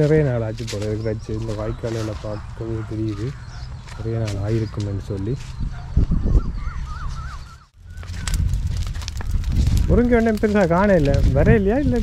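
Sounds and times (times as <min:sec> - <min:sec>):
bird calling with wavering note: 0:06.1 - 0:08.3.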